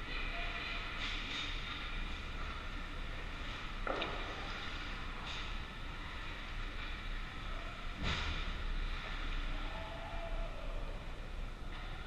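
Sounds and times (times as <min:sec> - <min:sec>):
ice rink arena hum and hiss: 0:00.0 - 0:12.0.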